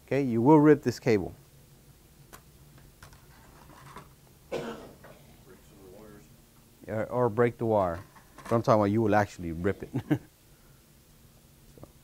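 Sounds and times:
cable rustling: 0:02.3 - 0:04.2.

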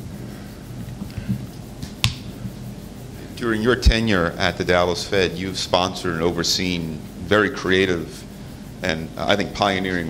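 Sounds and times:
faint low hum: 0:00.0 - 0:10.0
sharp click: 0:01.8 - 0:02.3.

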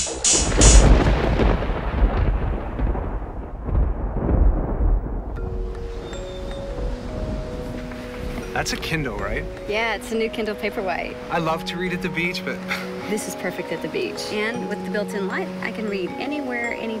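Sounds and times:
deep rumbling boom: 0:00.2 - 0:06.2.

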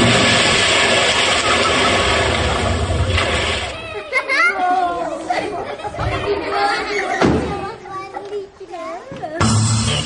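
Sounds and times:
voices chattering in a hall: 0:03.7 - 0:10.0.

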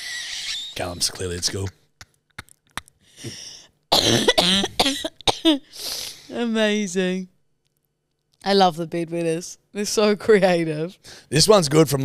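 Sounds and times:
breathy in-breath: 0:03.0 - 0:03.7
woman coughing: 0:03.2 - 0:05.8.

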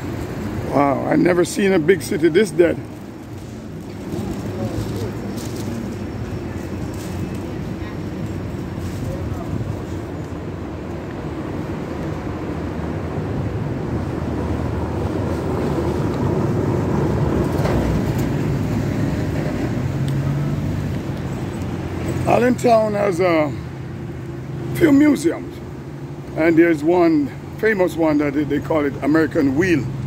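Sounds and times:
low rumble of motor traffic: 0:00.0 - 0:30.0.

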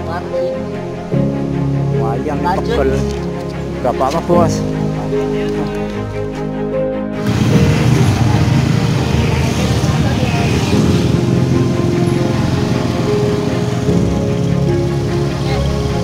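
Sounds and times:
background music with held tones: 0:00.0 - 0:16.0
motor scooter running: 0:07.2 - 0:16.0.

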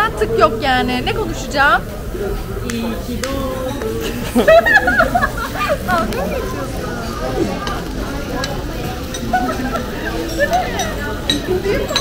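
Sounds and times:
background chatter: 0:00.0 - 0:12.0
sparkler crackles: 0:00.4 - 0:06.8.

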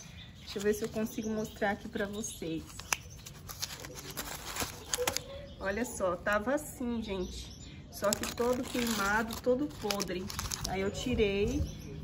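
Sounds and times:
paper and cloth rustling: 0:02.0 - 0:05.3, 0:08.0 - 0:11.0.

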